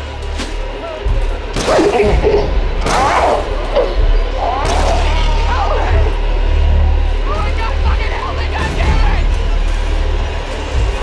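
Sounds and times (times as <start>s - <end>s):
deep low rumble: 0.0s - 11.0s.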